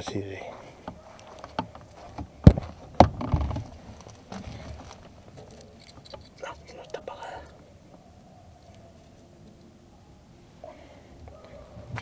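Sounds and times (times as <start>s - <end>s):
sharp knocks: 0.9s - 4.8s.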